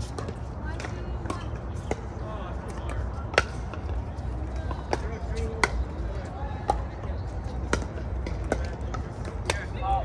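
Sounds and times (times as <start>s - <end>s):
voices in background: 0.1s - 10.0s.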